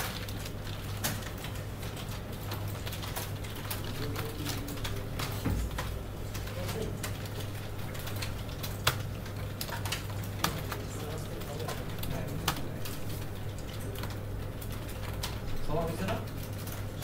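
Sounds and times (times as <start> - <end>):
computer keyboard and mouse clicks: 0.0 - 17.0
low electrical hum: 0.0 - 17.0.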